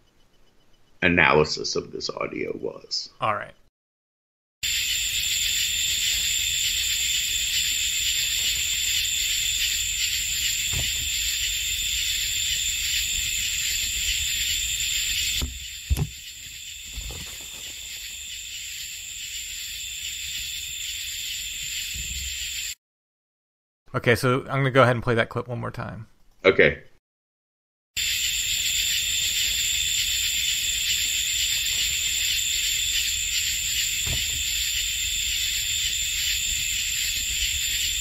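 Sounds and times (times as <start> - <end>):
high-pitched night ambience hiss: 0.0 - 3.6, 4.6 - 22.8, 28.0 - 38.0
knocks and bumps: 10.5 - 11.6, 15.4 - 16.2, 33.9 - 34.7.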